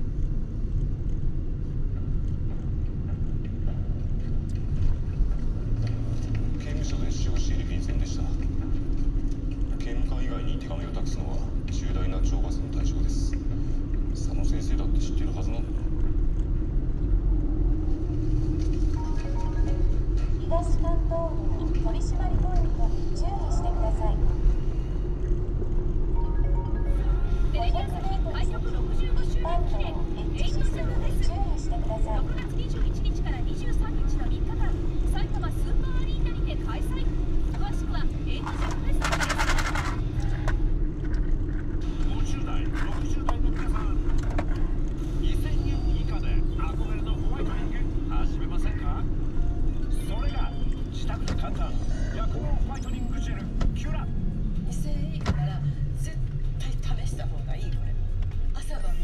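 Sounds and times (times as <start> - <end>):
car cabin road and engine rumble: 0.0 - 59.0
radio music and voices: 5.9 - 59.0.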